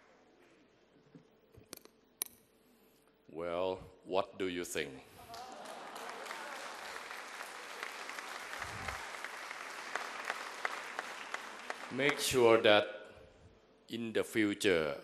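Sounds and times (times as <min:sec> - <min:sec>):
audience applauding: 0:05.3 - 0:12.4.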